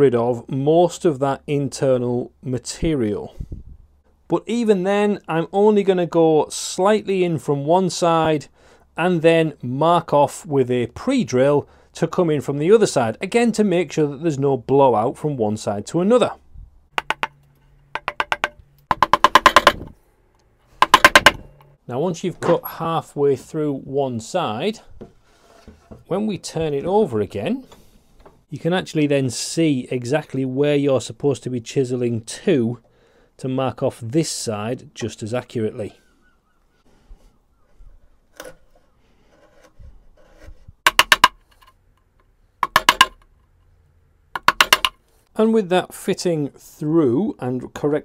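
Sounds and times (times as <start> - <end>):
wood chisel tapping: 16.9 - 19.9, 20.8 - 21.5, 40.9 - 41.4, 42.6 - 43.2, 44.4 - 45.0
chisel scraping wood: 25.0 - 26.1, 38.3 - 41.7.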